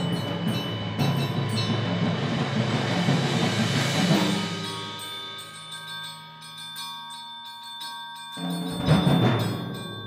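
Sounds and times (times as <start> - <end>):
cymbal roll: 0.0 - 10.0.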